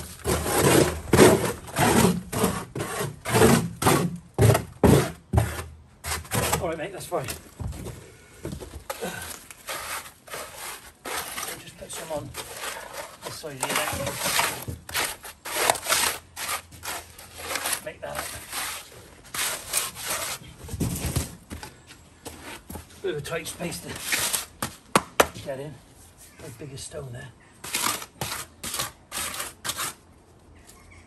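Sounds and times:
float scraping wet concrete: 0.0s - 7.4s, 8.9s - 21.2s, 23.3s - 24.6s, 27.6s - 30.1s.

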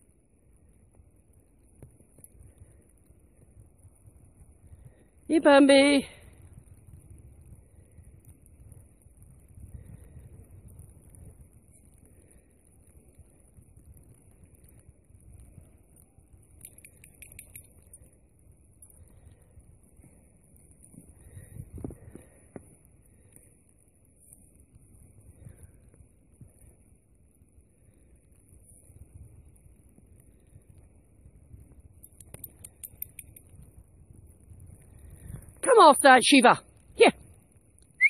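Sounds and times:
wind rumble on microphone: 0.0s - 35.7s
wind buffeting microphone: 2.4s - 12.3s, 21.0s - 22.8s, 33.2s - 35.6s
light clinks: 16.5s - 18.2s, 32.0s - 33.6s.

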